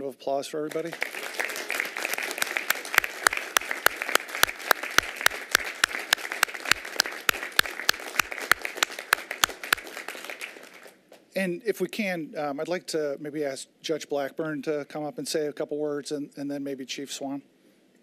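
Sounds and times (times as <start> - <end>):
group applauding: 0.7 - 11.0
loud close hand claps: 0.8 - 11.0.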